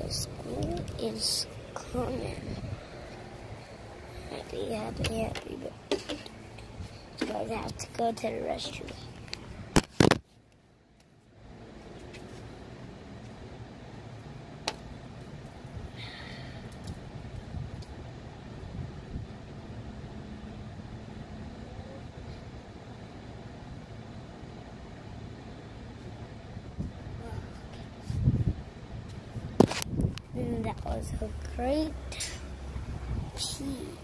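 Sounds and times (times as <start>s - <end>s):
faint hum: 0.0s - 34.0s.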